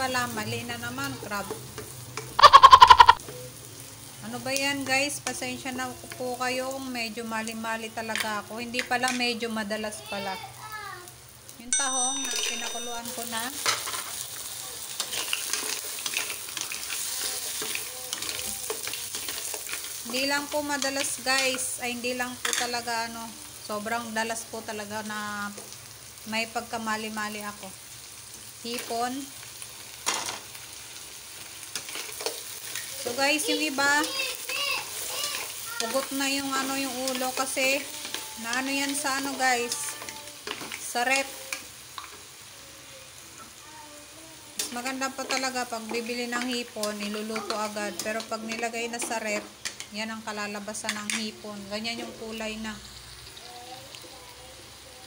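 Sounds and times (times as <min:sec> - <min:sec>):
food sizzling in a frying pan: 0:00.0 - 0:55.0
spatula scraping a pan: 0:13.5 - 0:20.2, 0:31.7 - 0:42.1.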